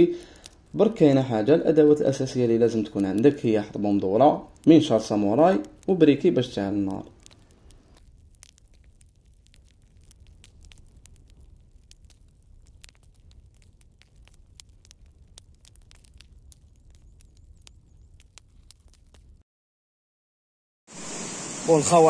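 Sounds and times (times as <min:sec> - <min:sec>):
burning log crackling and popping: 0:00.0 - 0:19.4.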